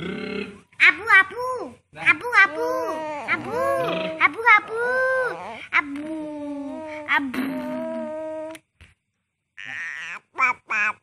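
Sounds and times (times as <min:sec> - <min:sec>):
baby crying: 0:02.6 - 0:05.7.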